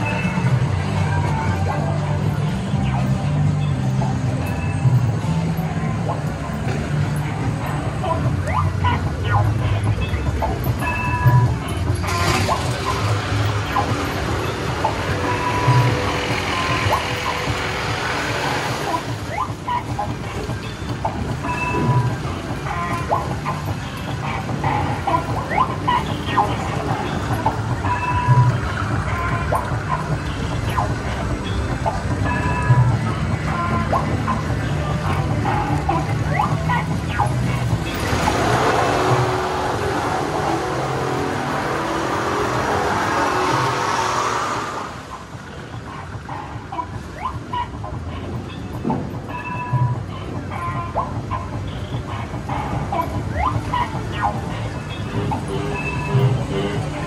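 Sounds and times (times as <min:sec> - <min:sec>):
music playing: 0:00.0 - 0:57.0
ride truck running along track: 0:00.0 - 0:57.0
loud rushing noise: 0:12.1 - 0:19.3, 0:36.9 - 0:46.4.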